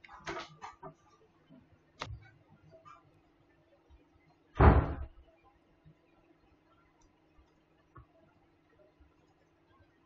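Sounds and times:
loud thump: 4.6s - 5.1s.

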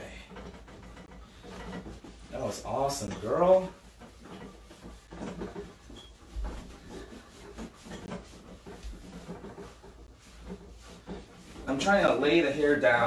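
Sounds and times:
towel rubbing dog's coat: 1.0s - 13.0s.

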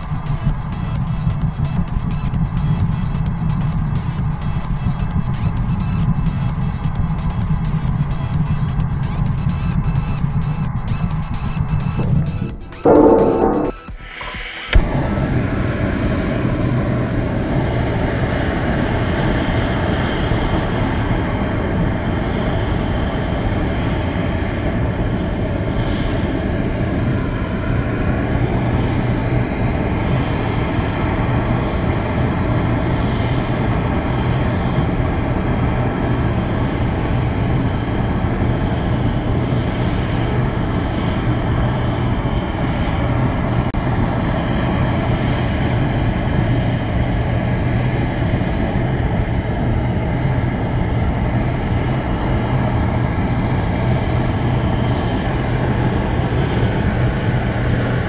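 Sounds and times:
low hum: 7.9s - 29.8s.

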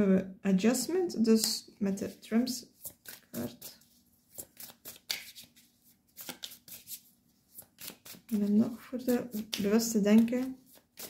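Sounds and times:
cards being shuffled: 2.8s - 11.0s.

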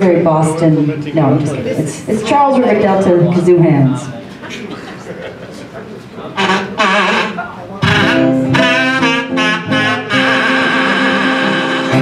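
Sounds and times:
kazoo buzzing: 6.4s - 12.0s.

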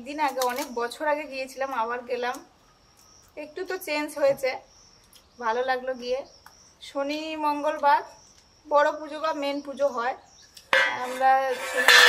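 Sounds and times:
woman talking: 10.9s - 11.7s.

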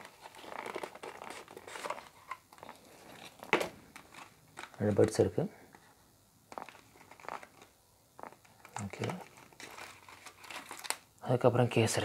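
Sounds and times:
plastic film crinkling: 0.0s - 5.3s, 6.5s - 11.2s.

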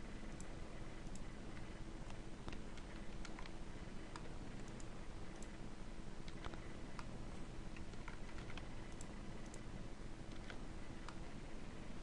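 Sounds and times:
low steady background hum: 0.0s - 12.0s
mouse and keyboard clicks: 2.1s - 5.6s, 6.2s - 7.1s, 7.8s - 9.7s, 10.3s - 11.2s.

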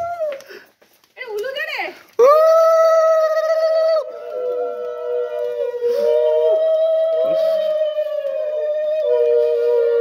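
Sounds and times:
conch shells blown in long notes: 3.5s - 10.0s.

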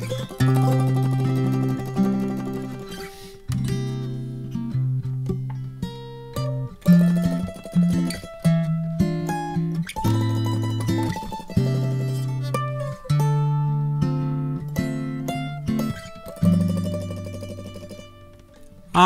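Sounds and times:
picked mandolin: 0.0s - 19.0s
plucked string chords: 0.0s - 19.0s.

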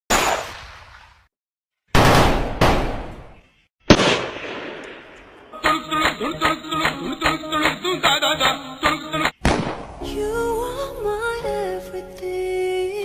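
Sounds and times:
gunshots with echoing tail: 2.0s - 3.3s, 3.9s - 7.8s, 9.4s - 10.0s.

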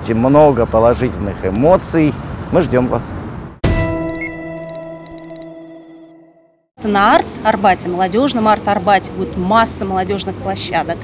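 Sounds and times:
electronic transition jingle: 3.6s - 6.7s.

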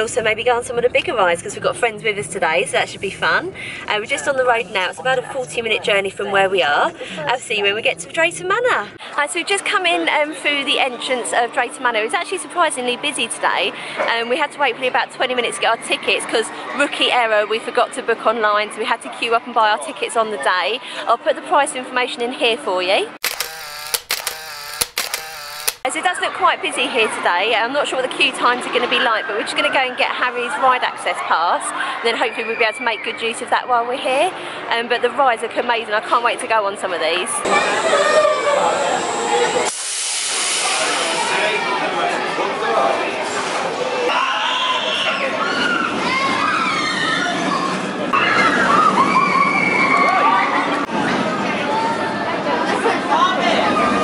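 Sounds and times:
camera shutter clicks: 23.2s - 25.9s
roller coaster train on track: 37.0s - 54.0s
riders and crowd shouting: 37.4s - 39.7s, 40.7s - 54.0s.

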